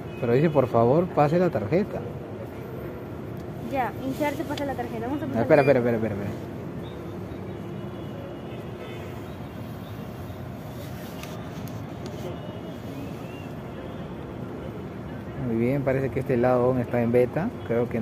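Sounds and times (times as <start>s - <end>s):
low urban background hum: 0.0s - 18.0s.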